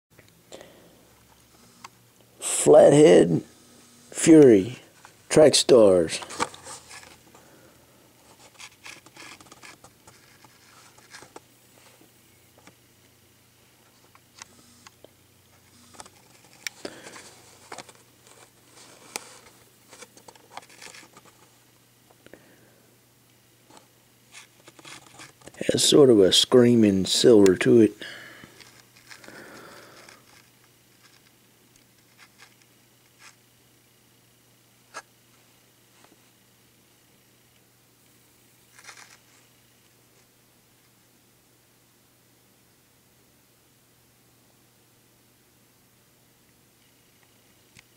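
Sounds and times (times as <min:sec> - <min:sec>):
plastic blister pack crinkling: 0:08.3 - 0:11.4, 0:15.9 - 0:21.5, 0:24.4 - 0:25.9, 0:28.4 - 0:33.4, 0:38.7 - 0:39.3.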